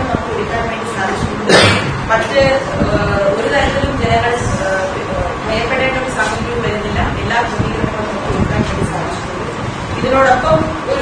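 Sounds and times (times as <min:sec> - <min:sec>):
woman speaking: 0:00.0 - 0:11.0
sharp cough: 0:01.5 - 0:02.0.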